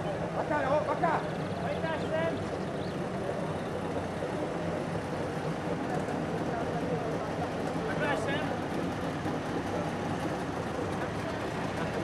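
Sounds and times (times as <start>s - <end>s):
two-stroke engines idling: 0.0s - 12.0s.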